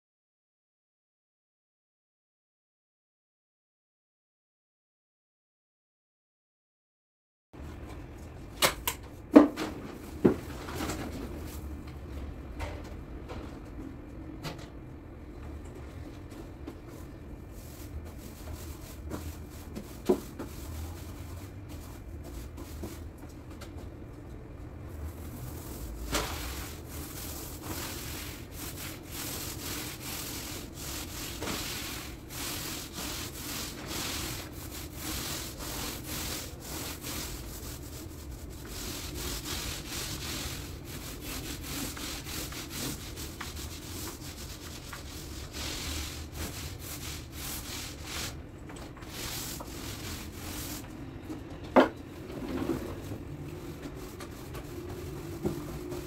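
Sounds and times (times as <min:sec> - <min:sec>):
paint pad rubbing on wall: 0:17.0 - 0:23.0, 0:25.0 - 0:48.4, 0:49.0 - 0:50.8, 0:53.6 - 0:56.0.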